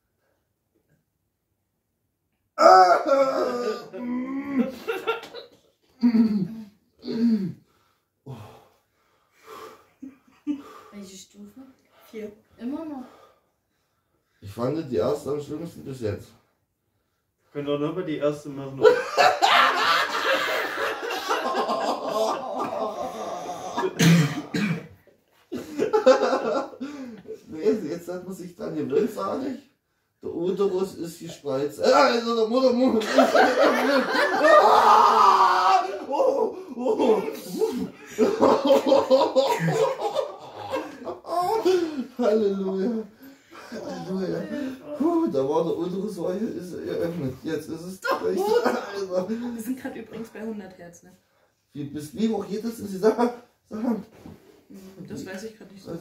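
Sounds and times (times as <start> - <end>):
man crying out: 2.6 - 4.9, 18.8 - 24.6, 34.3 - 38.0, 39.6 - 43.0
man's broken vocal sounds: 22.1 - 24.6
man gasping: 26.8 - 27.3, 40.8 - 42.2
man breathing heavily: 41.6 - 42.2.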